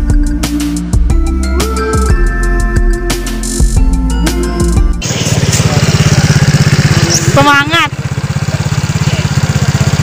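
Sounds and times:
motorcycle engine idling: 5.0 - 10.0.

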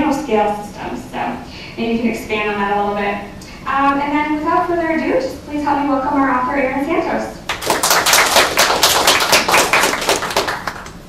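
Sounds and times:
audience applauding: 7.5 - 11.0.

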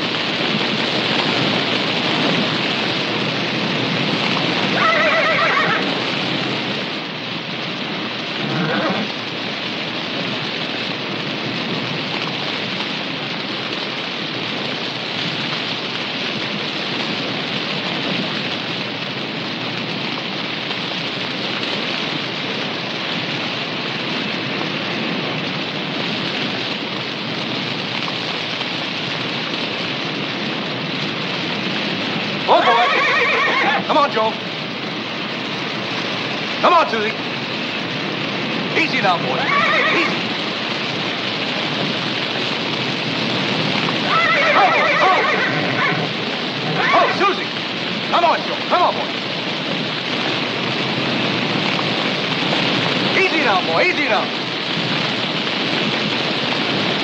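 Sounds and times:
fire burning: 0.0 - 57.0
horse whinnying: 4.7 - 5.9, 8.4 - 9.2, 32.5 - 33.9, 39.3 - 40.3, 44.0 - 47.5.

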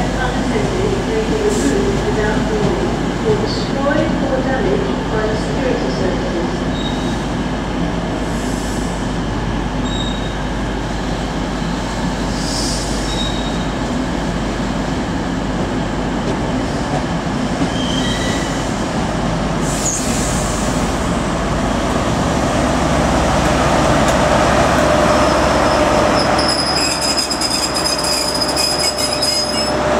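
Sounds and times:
train rumble: 0.0 - 29.9
train brakes squealing: 6.7 - 7.2, 9.8 - 10.4, 12.4 - 13.7, 17.7 - 18.7, 19.7 - 20.4, 25.2 - 29.8.

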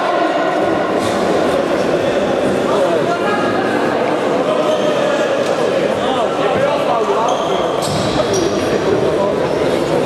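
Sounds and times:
echoing sports hall din: 0.0 - 10.0.

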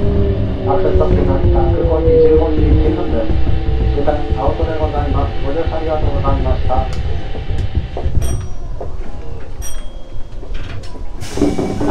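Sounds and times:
announcement voice: 0.0 - 7.6
electric train slowing to stop: 0.0 - 11.9.

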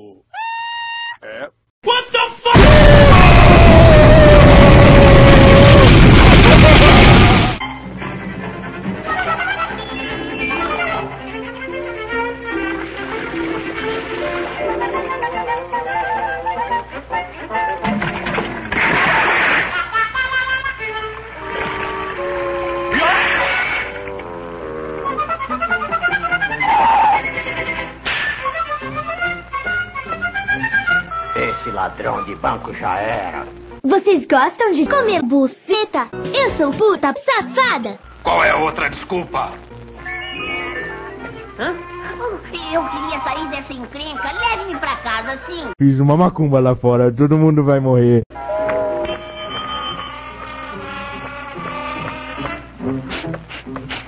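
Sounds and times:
cartoon music with violin: 0.3 - 1.2, 8.6 - 17.8, 28.4 - 31.6, 40.0 - 42.3, 48.5 - 53.9
cartoon explosion blast: 2.5 - 7.7, 17.8 - 19.9.

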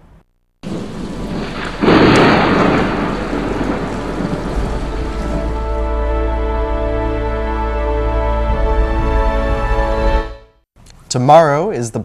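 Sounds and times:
thunderclap rumbling: 0.6 - 7.3
heavy rain: 0.6 - 7.8
soft music: 5.0 - 10.6.

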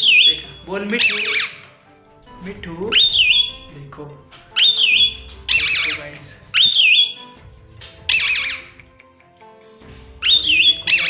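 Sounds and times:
parakeet whistling and screeching: 0.0 - 1.8, 2.8 - 3.8, 4.5 - 8.8, 10.2 - 11.0.

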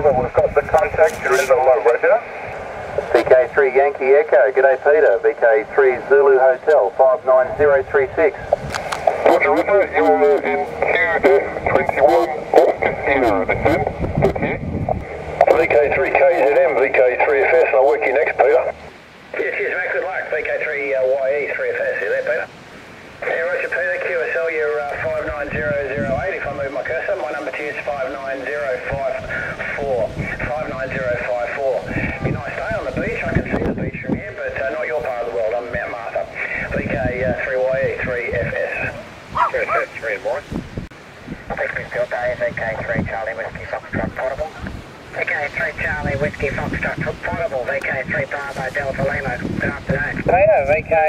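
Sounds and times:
radio voices through speaker: 0.0 - 40.6, 41.3 - 51.0
wind on microphone: 0.0 - 51.0.

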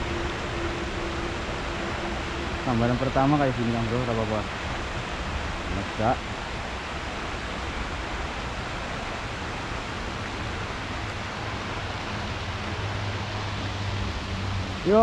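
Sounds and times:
steady outdoor noise hiss: 0.0 - 15.0.

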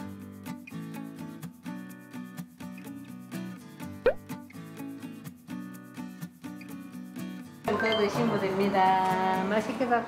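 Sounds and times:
background music with light beat: 0.0 - 10.0.

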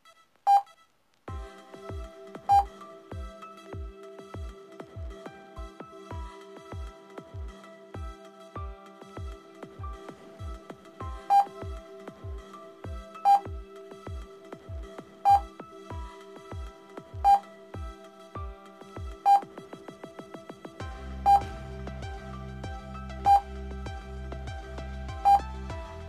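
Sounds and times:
electronic music with steady beat: 1.3 - 26.0
deep bass line: 20.8 - 26.0.

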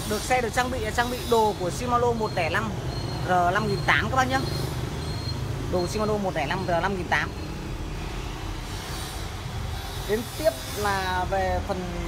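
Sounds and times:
low rumble of road traffic: 0.0 - 12.0.

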